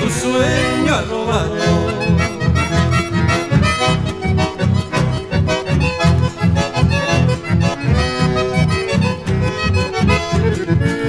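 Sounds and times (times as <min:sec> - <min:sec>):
accordion melody: 0:00.0 - 0:11.0
pulsing bass: 0:00.0 - 0:11.0.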